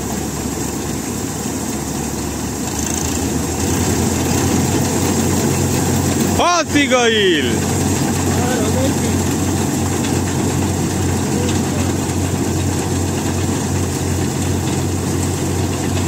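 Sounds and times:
combine harvester engine drone: 0:00.0 - 0:16.0.

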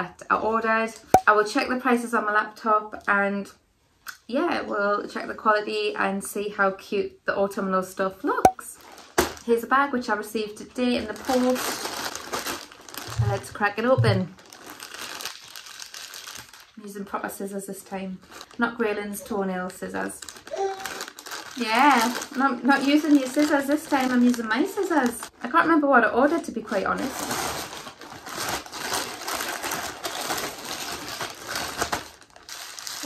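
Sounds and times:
plastic bag crinkling: 0:08.7 - 0:09.6, 0:10.8 - 0:16.8, 0:18.0 - 0:33.0.

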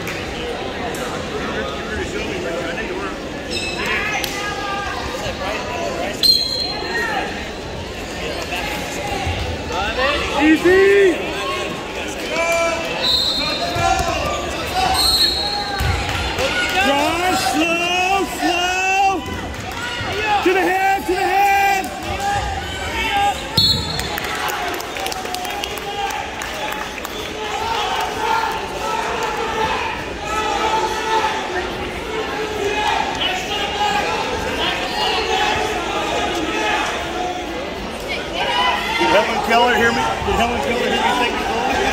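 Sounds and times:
spectators shouting in echoing gym: 0:00.0 - 0:41.9.

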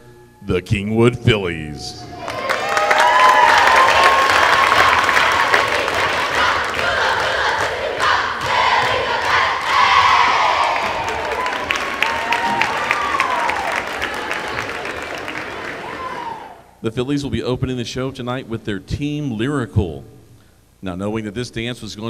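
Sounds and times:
crowd cheering and screaming: 0:02.0 - 0:06.6, 0:09.7 - 0:16.7
scattered clapping: 0:02.2 - 0:16.0.

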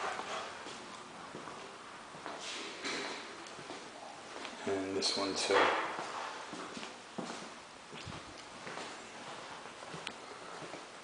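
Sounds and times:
faint footsteps on tile floor: 0:00.0 - 0:11.0.

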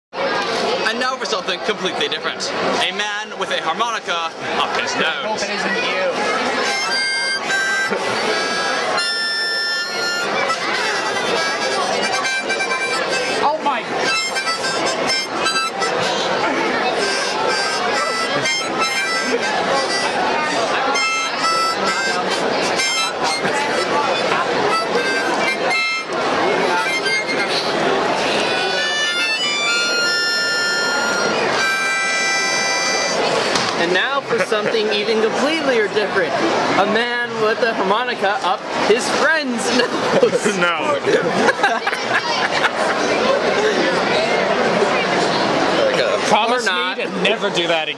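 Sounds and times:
harmonica notes and chords: 0:05.8 - 0:33.6.

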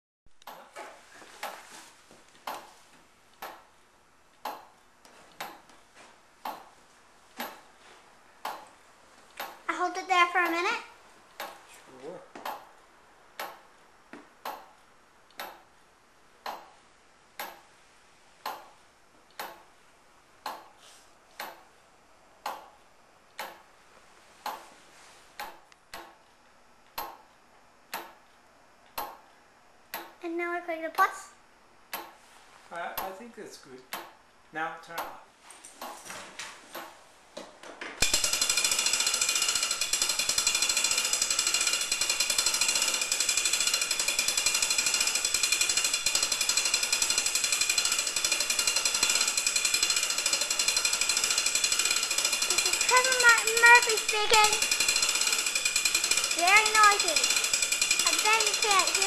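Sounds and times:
tower clock ticking: 0:00.4 - 0:00.7, 0:02.4 - 0:05.8, 0:06.4 - 0:06.8, 0:07.4 - 0:07.7, 0:08.4 - 0:11.6, 0:12.4 - 0:13.8, 0:14.4 - 0:15.8, 0:16.4 - 0:17.7, 0:18.4 - 0:19.8, 0:20.4 - 0:21.8, 0:22.4 - 0:23.7, 0:25.4 - 0:30.2, 0:31.9 - 0:32.2, 0:33.8 - 0:34.2, 0:34.9 - 0:35.2, 0:38.0 - 0:59.0.

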